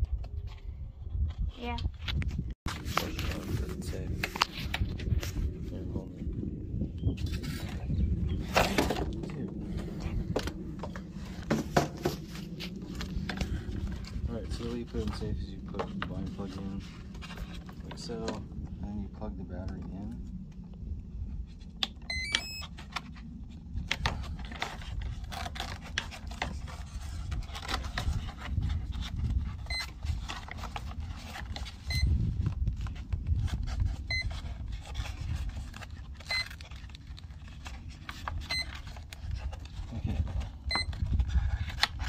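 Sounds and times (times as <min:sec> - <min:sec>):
wind rumble on microphone: 0:00.0 - 0:42.0.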